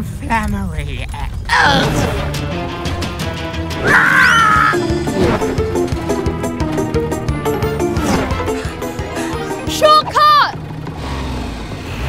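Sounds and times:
low vehicle engine: 0:04.4 - 0:12.0.

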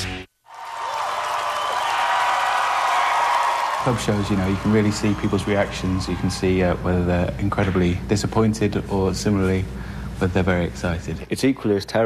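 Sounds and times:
crowd applauding and cheering: 0:00.0 - 0:07.1
man speaking: 0:03.8 - 0:12.0.

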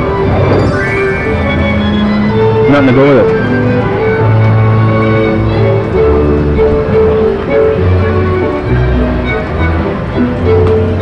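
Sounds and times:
slot machine bonus music: 0:00.2 - 0:03.2.

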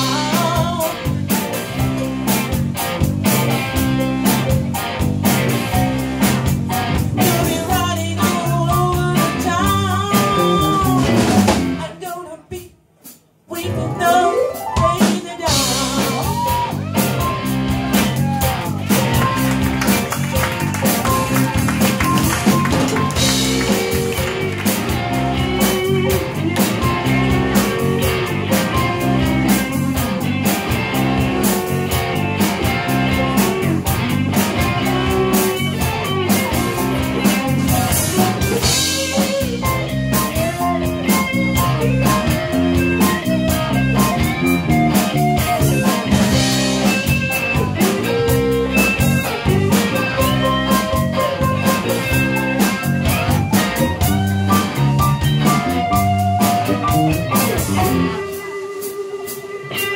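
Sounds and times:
live blues rock band: 0:00.0 - 0:59.9
bending electric guitar lines: 0:13.6 - 0:59.9.

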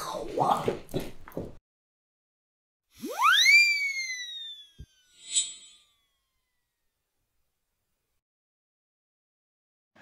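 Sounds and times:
electronic whistle-like sweeping tone: 0:02.9 - 0:07.0.

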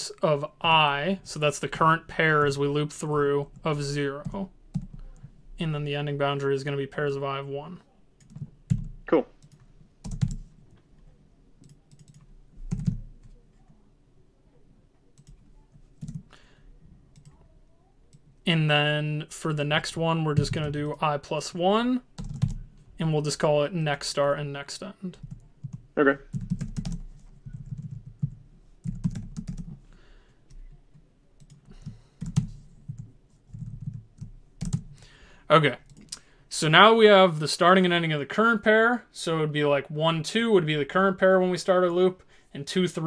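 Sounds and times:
computer keyboard typing: 0:04.2 - 0:05.2, 0:08.2 - 0:10.5, 0:11.6 - 0:13.4, 0:15.2 - 0:16.4, 0:22.2 - 0:22.6, 0:25.2 - 0:29.8, 0:31.4 - 0:34.9.

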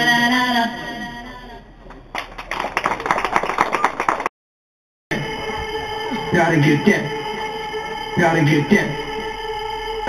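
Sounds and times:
small group clapping: 0:01.9 - 0:04.3.

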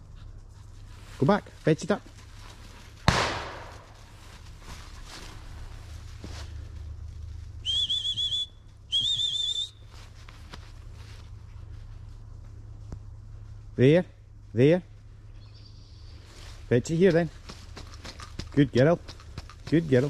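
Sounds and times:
sharp thump: 0:03.1 - 0:03.9
trilled dog whistle blasts: 0:07.6 - 0:09.8.

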